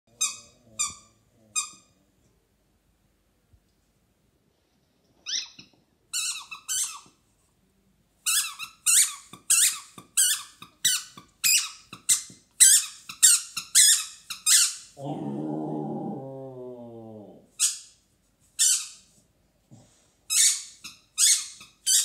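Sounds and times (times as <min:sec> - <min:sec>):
squeaky toy squeaking: 0:00.1 - 0:01.9, 0:05.2 - 0:07.2, 0:08.2 - 0:14.9, 0:18.6 - 0:19.1, 0:20.3 - 0:22.0.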